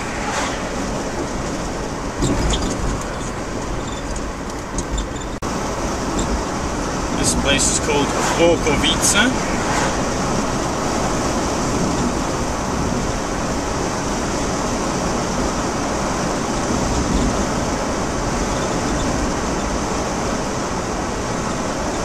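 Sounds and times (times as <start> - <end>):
van engine and tyre noise: 0.0 - 22.0.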